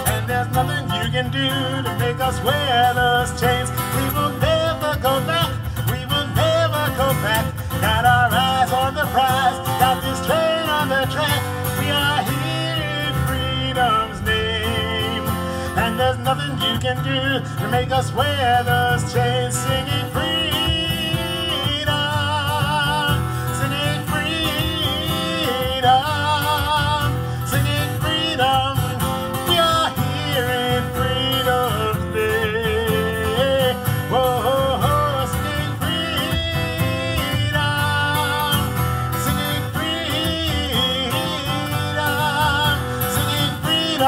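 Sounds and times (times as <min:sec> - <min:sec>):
acoustic guitar: 0:00.0 - 0:44.0
man singing: 0:00.0 - 0:44.0.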